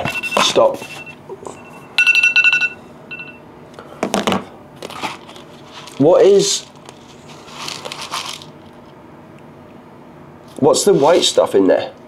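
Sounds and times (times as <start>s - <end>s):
phone timer alarm beeping: 0.0s - 3.4s.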